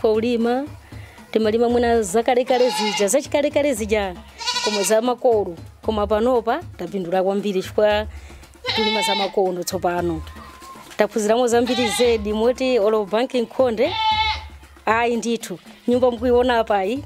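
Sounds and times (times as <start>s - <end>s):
woman speaking: 0.0s - 0.7s, 1.3s - 8.1s, 8.7s - 10.3s, 11.0s - 14.0s, 14.8s - 17.0s
goats bleating: 2.4s - 3.2s, 4.3s - 5.0s, 8.6s - 12.8s, 13.6s - 14.6s, 15.4s - 16.1s.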